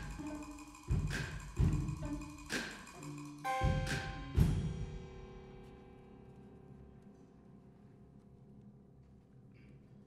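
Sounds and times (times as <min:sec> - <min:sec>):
percussion strikes with deep thuds: 0:00.0 - 0:05.7.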